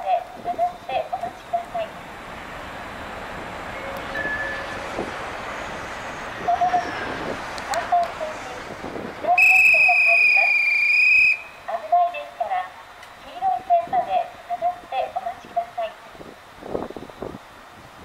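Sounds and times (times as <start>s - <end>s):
shrill conductor's whistle: 9.4s - 11.5s.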